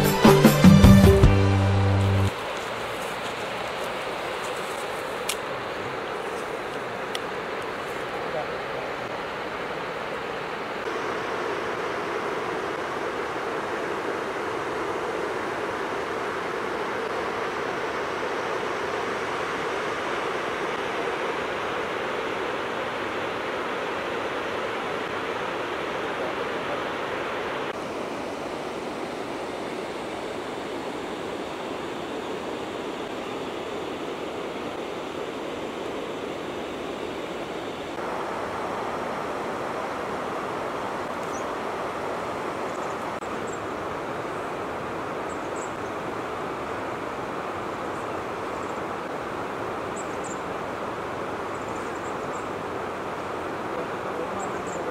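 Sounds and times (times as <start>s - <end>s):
river water flowing over stones: 1.9s - 54.9s.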